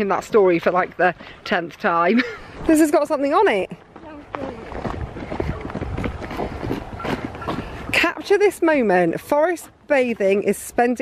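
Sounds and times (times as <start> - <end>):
wind buffeting microphone: 2.2 - 10.7
footsteps on dirt path: 2.5 - 11.0.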